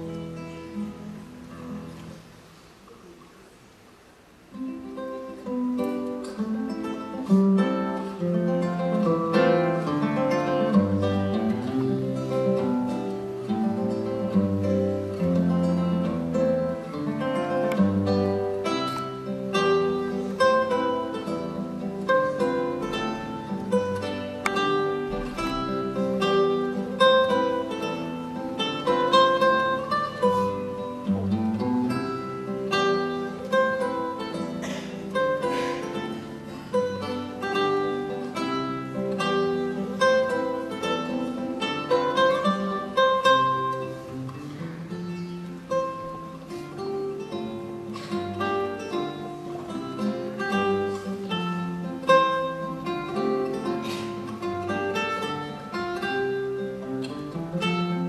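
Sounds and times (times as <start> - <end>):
classical guitar playing a waltz: 0.0 - 58.0.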